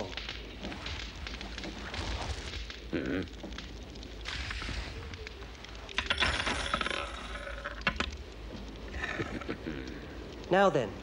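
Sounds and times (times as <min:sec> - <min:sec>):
coins clattering onto wooden table: 0:06.0 - 0:08.0.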